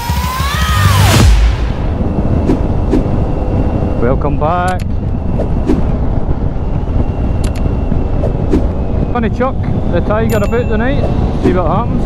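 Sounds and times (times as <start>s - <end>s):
wind rumble on microphone: 1.2s - 12.0s.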